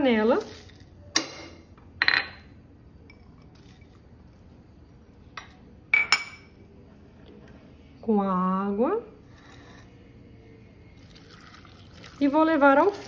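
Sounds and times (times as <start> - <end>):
dishes and saucepan clinking: 1.1 - 4.0, 5.3 - 6.6.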